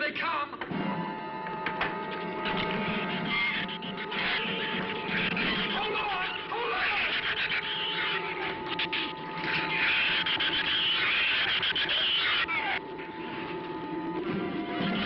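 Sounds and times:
high-pitched creature squealing: 2.9s - 12.8s.

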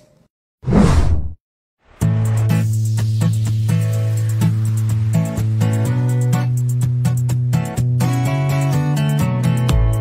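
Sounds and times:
whoosh sound effect: 0.6s - 1.4s.

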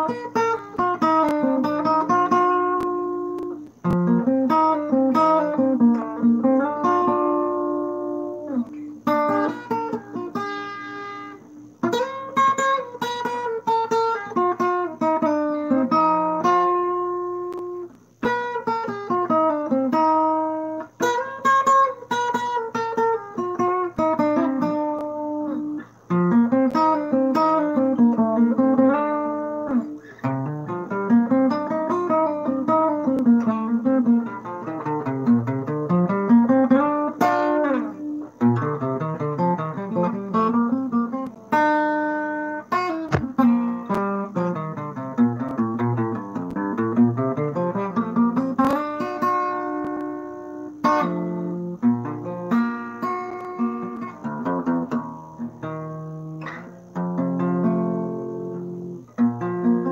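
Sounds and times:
acoustic guitar solo: 0.0s - 59.9s.

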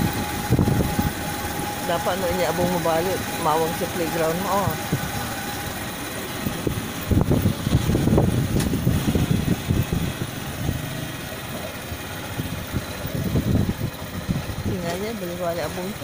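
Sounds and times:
motorcycle engine running: 0.0s - 16.0s.

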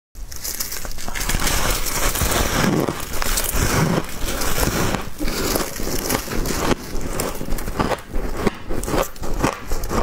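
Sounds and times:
ice crackling and crunching: 0.2s - 10.0s.

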